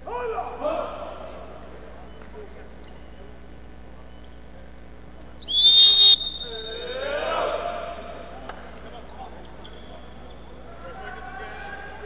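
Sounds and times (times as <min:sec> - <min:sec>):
referee's whistle blast: 0:05.4 - 0:07.4.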